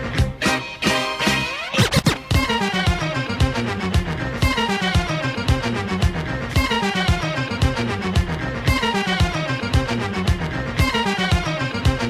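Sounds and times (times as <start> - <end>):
funk and breakbeat dj mix: 0.0 - 12.0
turntable scratch: 1.2 - 3.7.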